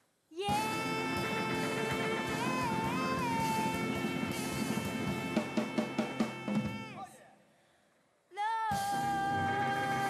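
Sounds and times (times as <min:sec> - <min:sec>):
sharp drum accents: 0:00.5 - 0:07.0
jazz combo playing: 0:00.6 - 0:06.8.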